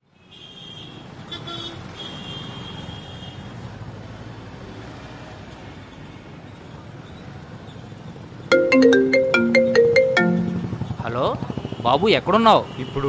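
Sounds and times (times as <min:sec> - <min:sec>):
passing vehicles rumble: 0:03.5 - 0:13.0
short high-pitched tones: 0:08.5 - 0:10.8.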